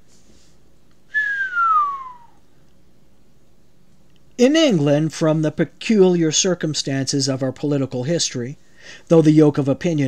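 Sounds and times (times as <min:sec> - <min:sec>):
whistled tone gliding down: 0:01.1 - 0:02.4.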